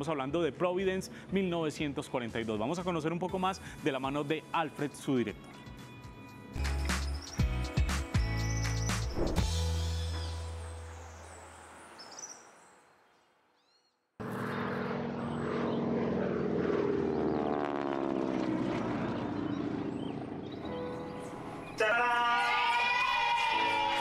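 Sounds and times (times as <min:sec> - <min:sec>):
music with a voice: 0:00.0 - 0:10.8, 0:21.1 - 0:24.0
propeller airplane droning overhead: 0:14.2 - 0:22.8.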